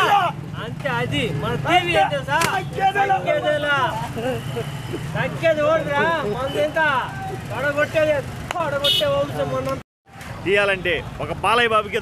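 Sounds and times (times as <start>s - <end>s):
men talking loudly: 0.0s - 9.8s, 10.4s - 12.0s
motorcycle engines rumbling: 0.0s - 12.0s.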